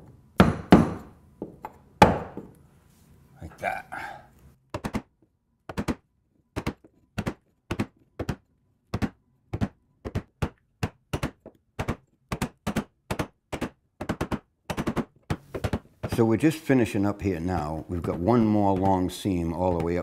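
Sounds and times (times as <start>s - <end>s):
mallet knocking on caulking iron: 17.3s - 20.0s.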